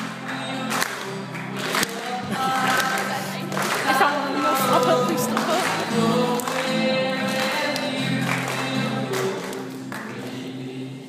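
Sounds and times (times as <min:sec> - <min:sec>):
acoustic guitar strumming: 0:00.0 - 0:11.0
man singing: 0:00.0 - 0:11.0.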